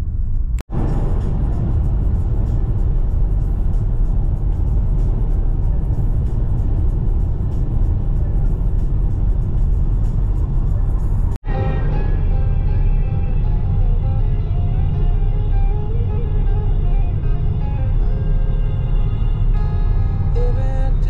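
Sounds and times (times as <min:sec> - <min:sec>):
car road noise from inside: 0:00.0 - 0:21.0
music playing: 0:00.7 - 0:21.0.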